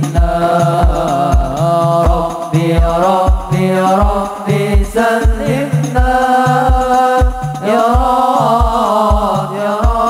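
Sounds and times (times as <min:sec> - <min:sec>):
frame drums beating: 0:00.0 - 0:10.0
men singing in unison: 0:00.0 - 0:10.0.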